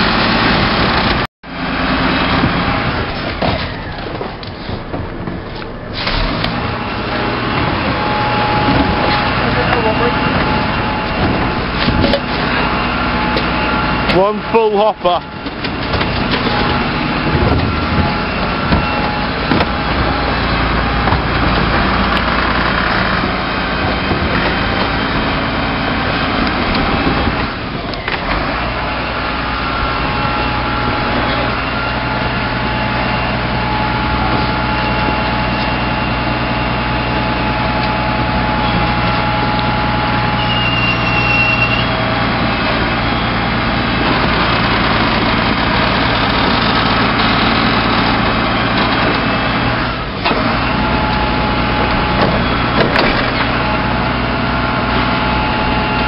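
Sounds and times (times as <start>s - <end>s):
hydraulic bin lift: 0.0s - 56.0s
refuse truck running: 0.0s - 56.0s
short high squeal: 40.2s - 42.1s.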